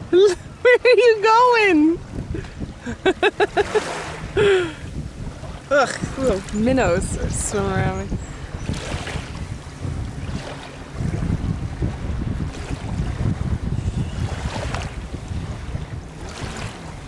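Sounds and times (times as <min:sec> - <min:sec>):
shallow water lapping: 0:00.0 - 0:17.0
water splashing: 0:00.0 - 0:17.0
wind rumbling on microphone: 0:00.0 - 0:17.0.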